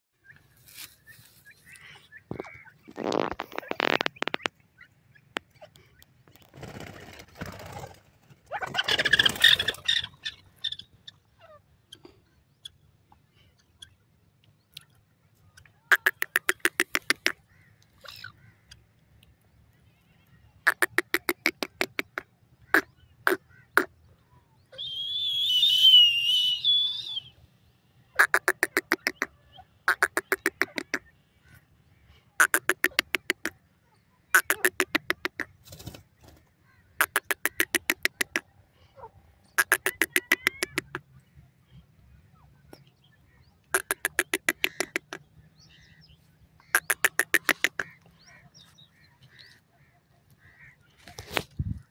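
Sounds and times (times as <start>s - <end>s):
francolin clucking call: 15.9s - 18.8s, 20.6s - 24.0s, 28.2s - 31.1s, 32.4s - 33.6s, 34.3s - 35.6s, 37.0s - 41.1s, 43.6s - 46.0s, 46.6s - 51.4s.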